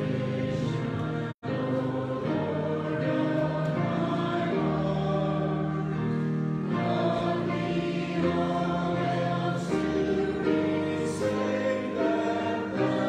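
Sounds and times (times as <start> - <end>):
congregation singing a hymn: 0.0 - 13.0.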